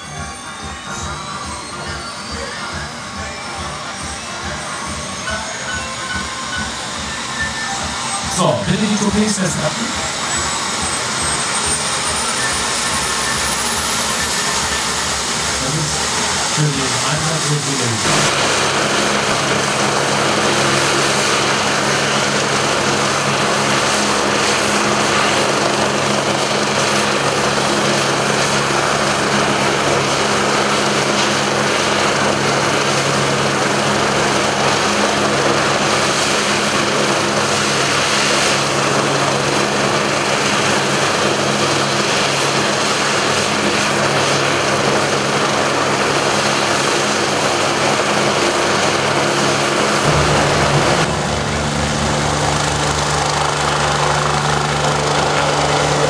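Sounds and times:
low hum: 0:00.0 - 0:28.6, 0:50.0 - 0:54.9
helicopter turbine and rotors: 0:00.0 - 0:56.0.

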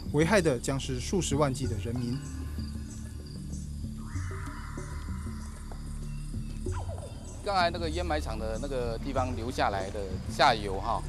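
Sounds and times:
background music drone: 0:00.0 - 0:11.0
insects chirping: 0:00.0 - 0:11.0.

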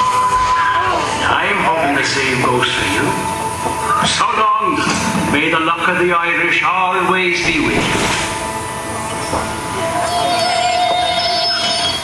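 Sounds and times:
shimmer of higher tones: 0:08.0 - 0:12.0
sustained high-pitched tone: 0:08.4 - 0:12.0.

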